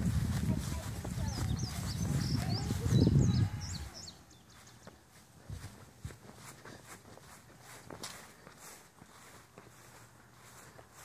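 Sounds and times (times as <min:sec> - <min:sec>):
footsteps on grass: 0:00.0 - 0:11.0
small birds chirping: 0:00.0 - 0:11.0.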